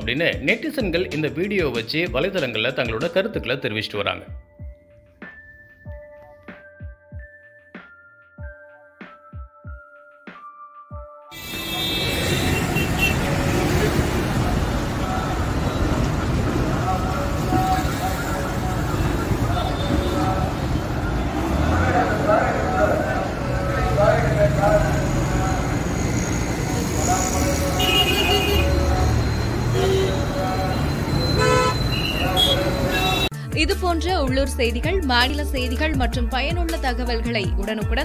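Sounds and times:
vehicle horn toot: 11.4s - 13.6s, 27.8s - 29.0s, 29.6s - 33.3s
traffic rumble: 11.5s - 33.3s
background voices: 13.2s - 31.4s.

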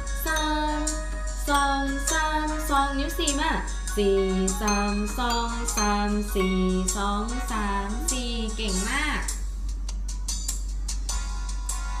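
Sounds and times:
toy piano notes: 4.0s - 8.2s.

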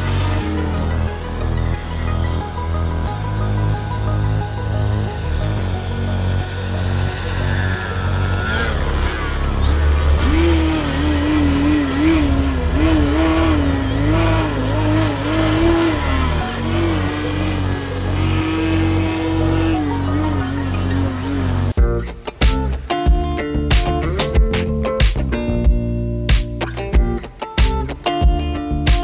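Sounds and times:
model plane motor whine: 0.0s - 21.8s
bass-heavy background music: 0.0s - 29.0s.

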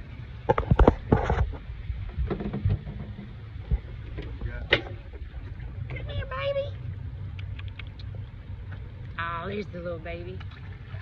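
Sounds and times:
steady low rumble: 0.0s - 11.0s
sharp knocks and clatters: 0.5s - 5.2s.

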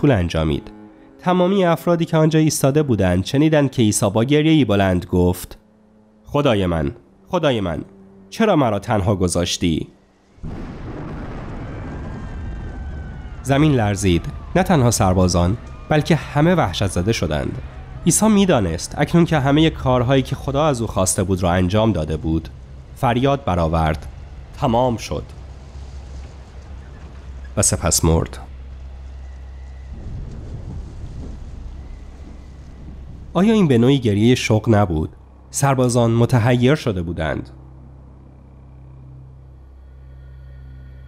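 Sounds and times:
deep earthquake rumbling: 10.0s - 36.2s.

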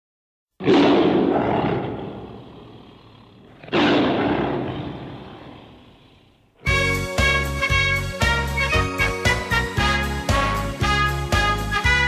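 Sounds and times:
tiger roaring: 0.6s - 6.7s.

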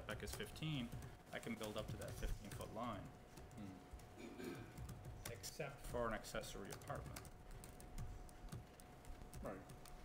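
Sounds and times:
typing on laptop keyboard: 0.0s - 10.0s.

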